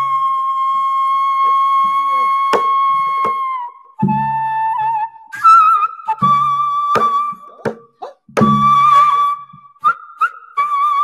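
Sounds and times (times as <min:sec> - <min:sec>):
bamboo flute long high note: 0:00.0 - 0:11.0.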